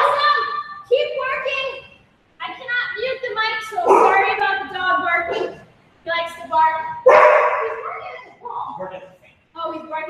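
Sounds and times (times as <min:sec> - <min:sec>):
dog barking: 0:03.8 - 0:04.4, 0:05.2 - 0:05.6, 0:07.0 - 0:08.2.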